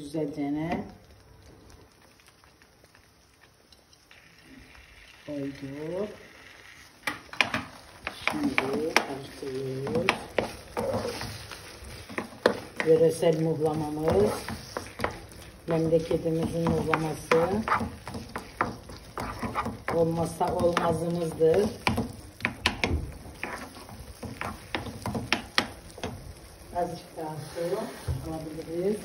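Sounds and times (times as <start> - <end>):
spoon stirring melted cheese: 6.9 - 26.6
spoon knocking against pan: 16.3 - 26.2.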